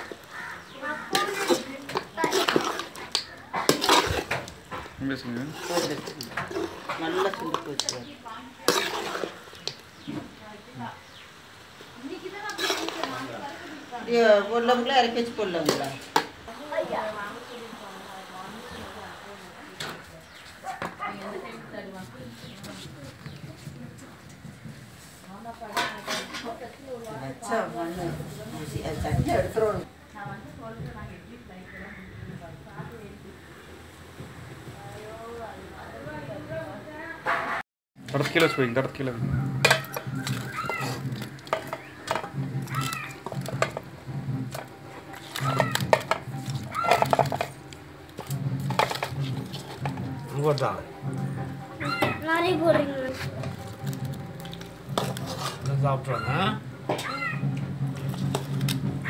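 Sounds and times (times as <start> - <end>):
people talking: 12.0 - 20.3, 25.3 - 33.5.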